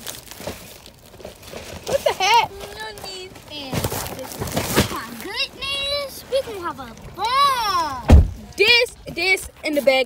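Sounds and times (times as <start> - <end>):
plastic bag crinkling: 0.0 - 7.2.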